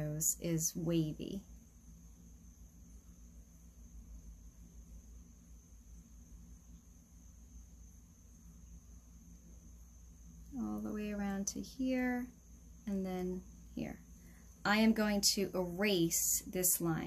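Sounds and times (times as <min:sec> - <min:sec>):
faint high-pitched whine: 0:00.0 - 0:17.0
steady low hum: 0:00.0 - 0:17.0.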